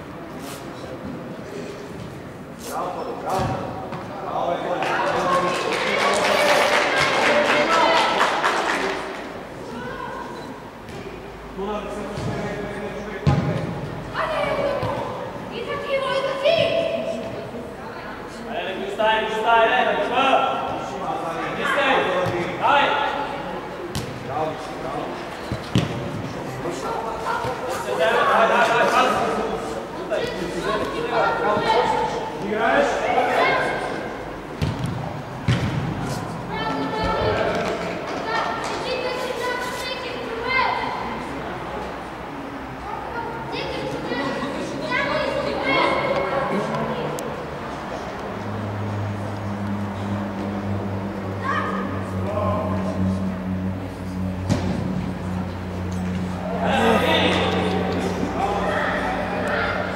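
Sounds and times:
steady low hum: 46.6s - 59.9s
players and spectators shouting: 48.4s - 54.3s, 55.4s - 59.9s
people calling out: 48.4s - 54.4s, 55.2s - 59.9s.

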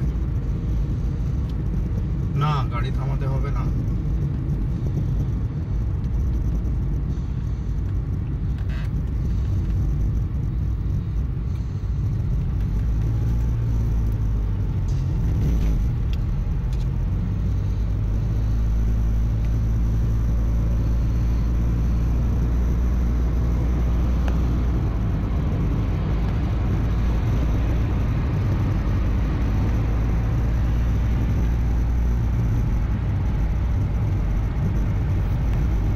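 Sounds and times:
vehicle engine and tyres rumbling: 0.0s - 35.9s.

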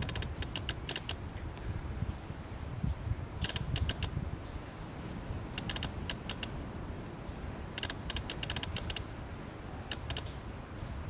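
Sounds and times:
wind rumbling on microphone: 0.0s - 11.0s
light sharp clicks: 3.4s - 6.5s, 7.3s - 9.2s, 9.9s - 10.9s.

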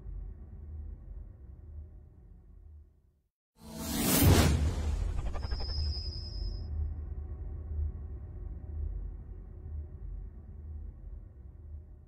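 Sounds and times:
whoosh: 3.6s - 6.6s.

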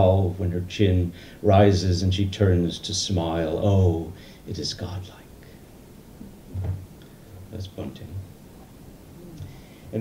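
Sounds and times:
man speaking softly: 0.0s - 5.4s, 7.5s - 8.2s.

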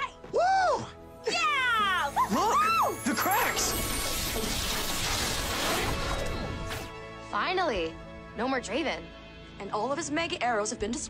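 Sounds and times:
film music: 0.0s - 11.0s
high vocal whoops: 0.3s - 3.0s.

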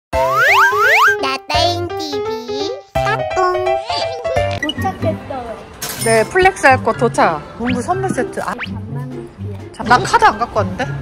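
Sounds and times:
cheerful children's jingle: 0.6s - 5.2s.

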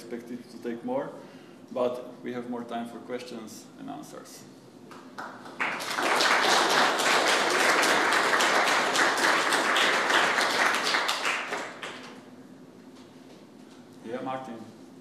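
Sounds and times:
audience applauding: 5.2s - 12.2s.

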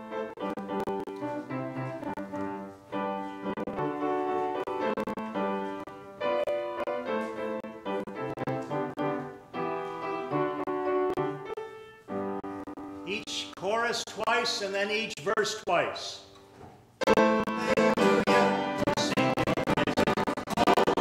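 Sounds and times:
piano playing sustained chords: 0.0s - 13.1s.

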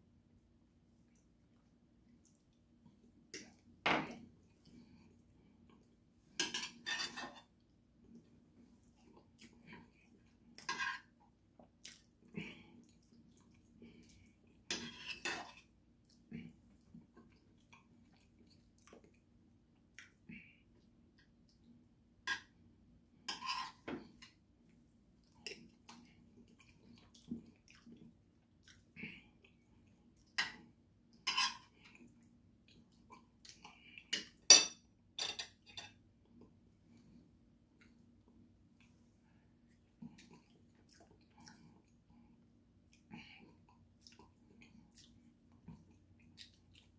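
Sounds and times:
cutlery clinking on ceramic plate: 6.4s - 7.4s, 34.2s - 36.0s.

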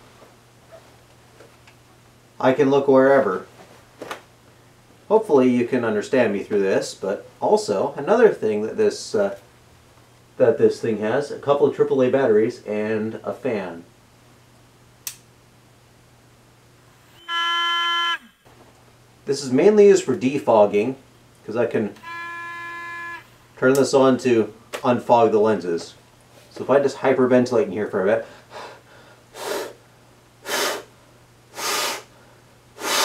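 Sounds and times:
small fan whining: 0.0s - 33.0s
click: 15.0s - 15.3s.

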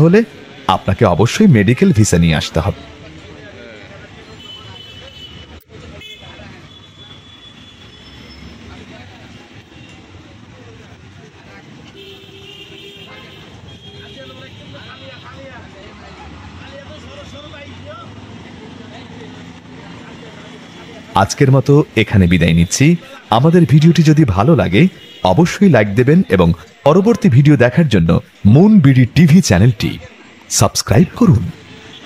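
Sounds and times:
passing vehicles: 0.0s - 32.0s
car horns: 4.2s - 8.7s, 11.4s - 15.4s, 20.1s - 27.2s, 31.0s - 32.0s.

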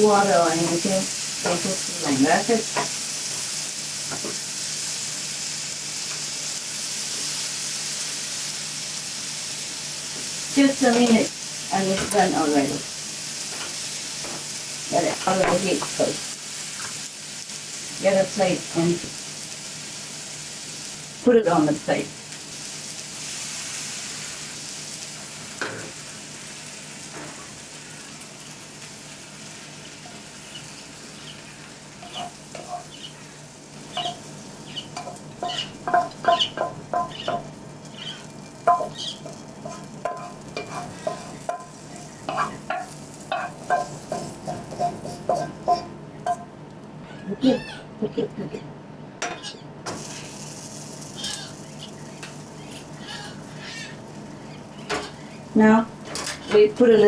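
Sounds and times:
vegetables sizzling in a pan: 0.0s - 46.4s, 49.2s - 57.0s
utensil scraping and clinking on pan: 38.6s - 46.4s.

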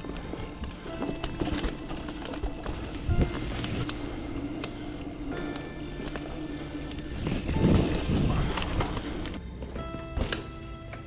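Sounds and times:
bike clicks and rattles: 0.0s - 4.0s, 4.6s - 9.4s
bike tyres rolling on dirt: 0.0s - 10.0s
background music: 0.0s - 11.0s.

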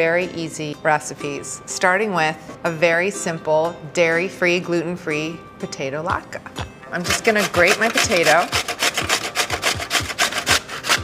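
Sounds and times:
potato grated on metal grater: 7.0s - 11.0s.

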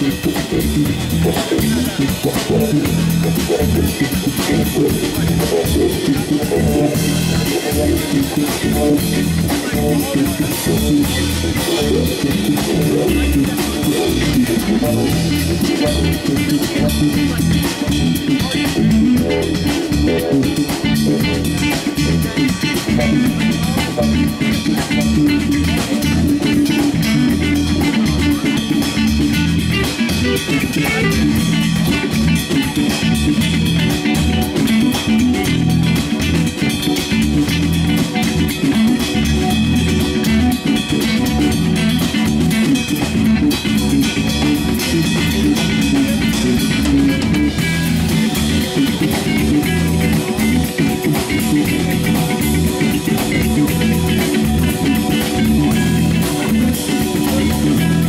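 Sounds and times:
drum kit: 0.0s - 58.0s
electric bass: 0.0s - 58.0s
electric guitar: 0.0s - 58.0s.

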